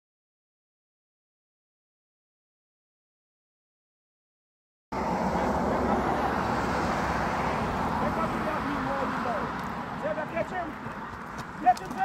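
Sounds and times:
faint distant voices: 5.0 - 12.0.

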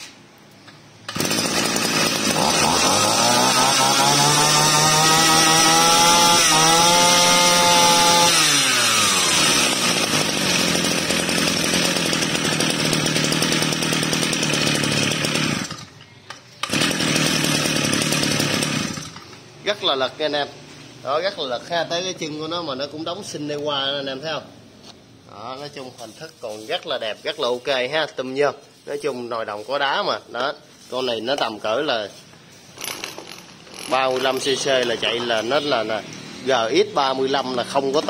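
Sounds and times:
brush cutter engine revving: 1.1 - 16.0, 16.6 - 19.4, 32.8 - 38.0.

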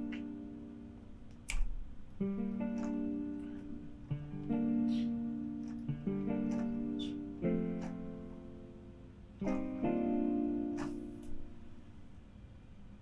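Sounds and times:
plucked guitar chords: 0.0 - 11.7.

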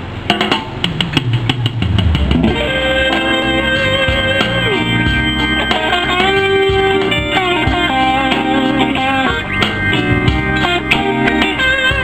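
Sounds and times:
sharp drum hits: 0.3 - 3.8
bass guitar line: 0.6 - 12.0
live blues band: 1.8 - 12.0.

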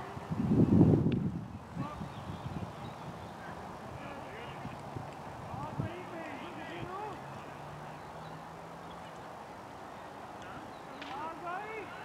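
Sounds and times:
outdoor background noise: 0.0 - 12.0
distant voices talking: 1.7 - 12.0.

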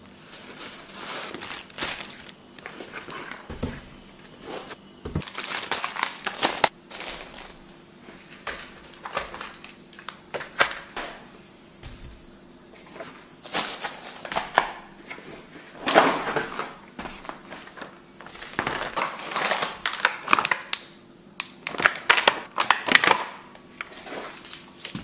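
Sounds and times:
crinkling plastic packaging: 0.0 - 11.2, 11.8 - 25.0
plastic packs knocking on table: 5.1 - 5.6, 11.8 - 12.3.

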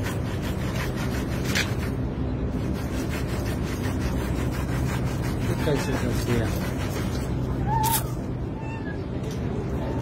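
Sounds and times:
steady low hum: 0.0 - 10.0
kitten mewing: 7.6 - 9.1.

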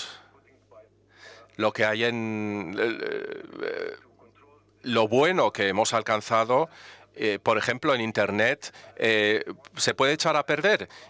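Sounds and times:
person speaking: 0.0 - 11.0
creaky vocal hesitation: 2.4 - 4.1.

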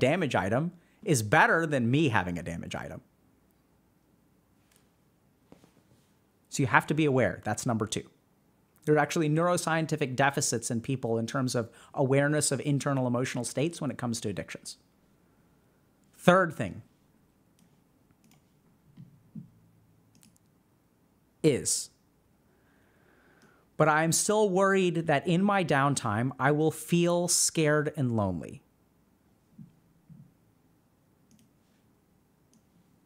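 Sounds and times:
faint sharp clicks: 20.1 - 20.5, 31.3 - 31.6.

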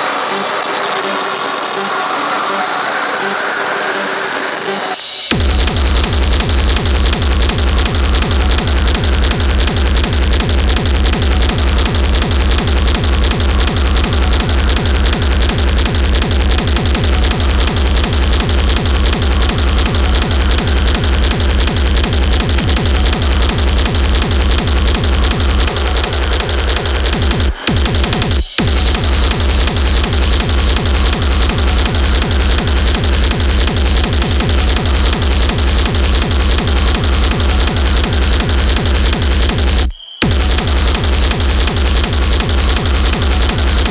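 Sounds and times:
distorted noise: 0.0 - 43.9
industrial techno: 0.0 - 43.9
heavy kick drum: 5.3 - 43.9.

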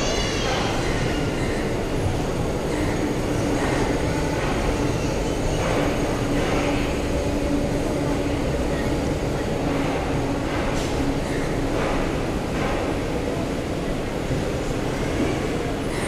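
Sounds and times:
train wheels on rails: 0.0 - 16.0.

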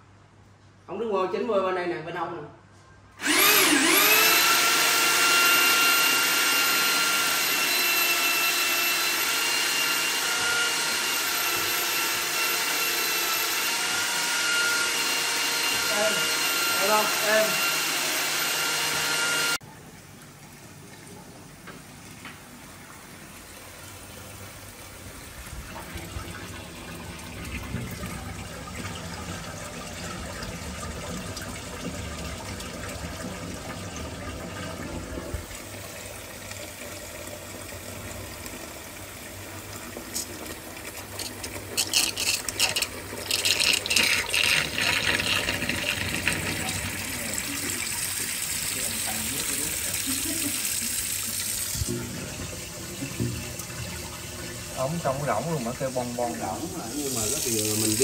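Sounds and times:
faucet stream splashing into sink: 25.4 - 58.0.

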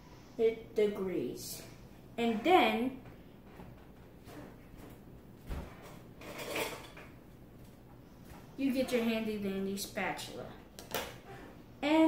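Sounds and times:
kitchen utensils clattering: 5.9 - 7.1.

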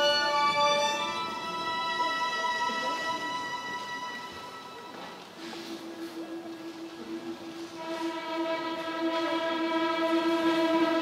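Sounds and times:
string orchestra holding a note: 7.7 - 11.0.

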